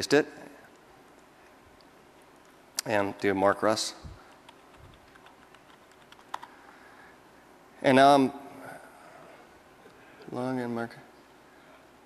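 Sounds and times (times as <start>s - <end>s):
typing on computer keyboard: 4.4s - 6.6s.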